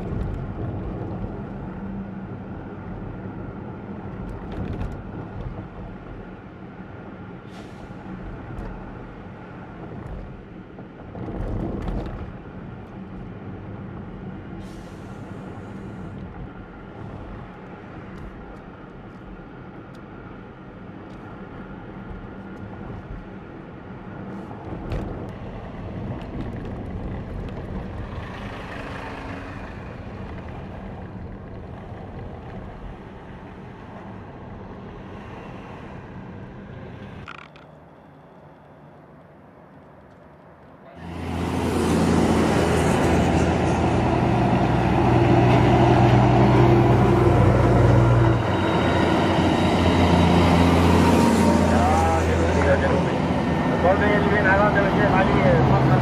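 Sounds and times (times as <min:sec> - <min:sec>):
heavy vehicles passing: 0:00.0 - 0:38.2, 0:38.9 - 0:56.0
car engine and tyre noise: 0:00.0 - 0:56.0.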